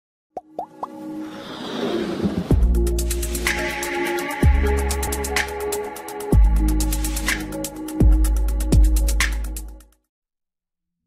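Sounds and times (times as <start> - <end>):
whoosh: 1.2 - 3.6.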